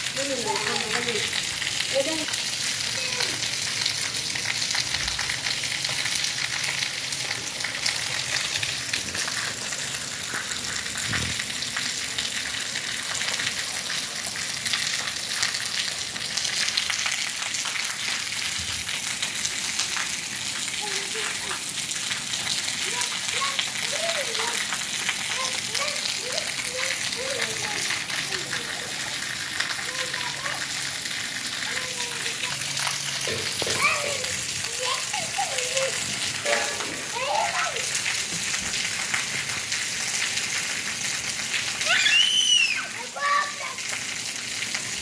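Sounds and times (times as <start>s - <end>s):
light rain on wet paving: 0.0s - 45.0s.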